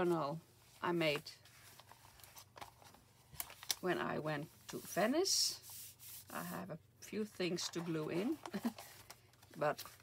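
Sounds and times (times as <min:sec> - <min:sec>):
paper pages rustling: 0:01.1 - 0:05.0, 0:07.6 - 0:10.0.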